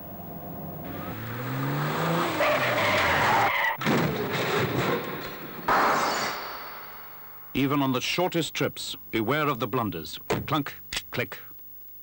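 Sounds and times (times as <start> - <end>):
car engine revving up: 0.3 - 3.5
car crash: 0.8 - 7.5
tyres screeching: 0.9 - 3.8.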